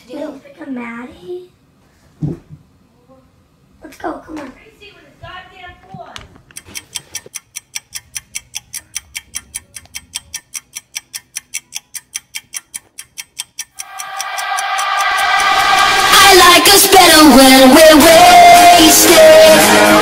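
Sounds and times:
clock-like ticking: 0:06.5 - 0:20.0
pitched musical swell: 0:13.8 - 0:17.0
music track: 0:13.8 - 0:20.0.

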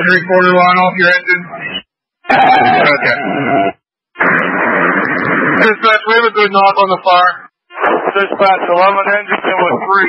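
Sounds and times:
radio static hiss: 0:04.2 - 0:10.0.

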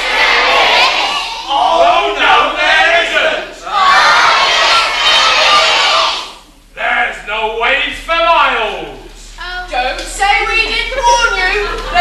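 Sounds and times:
voices shouting together: 0:00.0 - 0:06.4.

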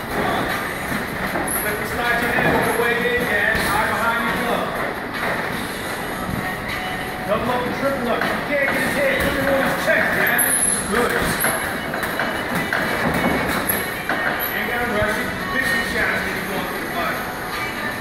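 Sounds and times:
indistinct voices talking: 0:00.0 - 0:17.4.

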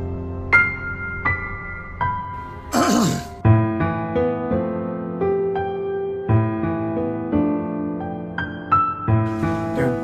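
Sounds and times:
slow sad piano music: 0:00.0 - 0:10.0.

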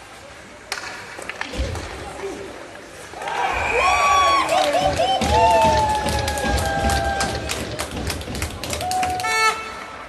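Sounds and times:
hockey stick clicks: 0:00.7 - 0:01.6
hockey puck impact crack: 0:00.7 - 0:02.0
crowd shouting and cheering: 0:03.1 - 0:10.0.

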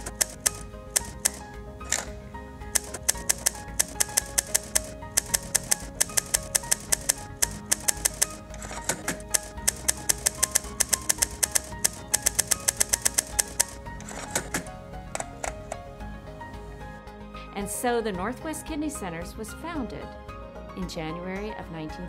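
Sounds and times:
typewriter keys clicking: 0:00.0 - 0:02.1, 0:02.8 - 0:15.6
background music sustained tones: 0:00.0 - 0:22.0.

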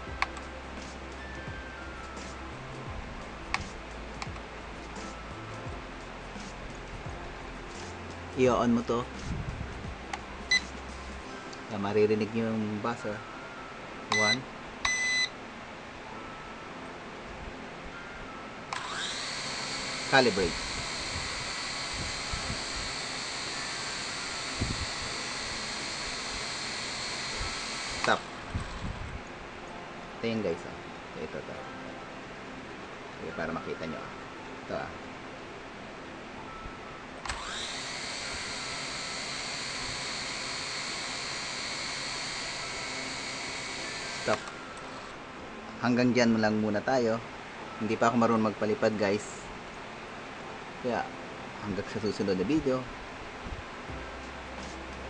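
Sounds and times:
short electronic beep: 0:14.1 - 0:15.3
drone motors whining: 0:18.7 - 0:29.2, 0:37.2 - 0:45.2.

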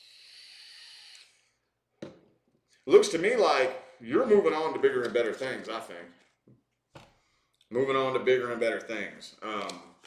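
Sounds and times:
airy hiss of vape draw: 0:00.0 - 0:01.5.

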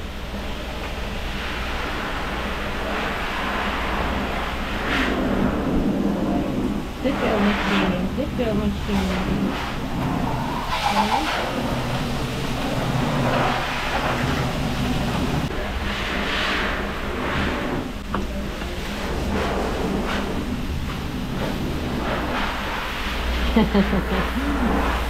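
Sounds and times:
machinery low hum: 0:00.0 - 0:25.0
water spraying from hose: 0:01.5 - 0:25.0.

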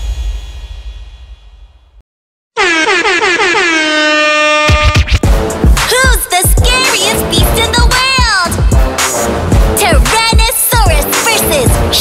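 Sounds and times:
cartoon air horn blasts: 0:02.6 - 0:05.2.

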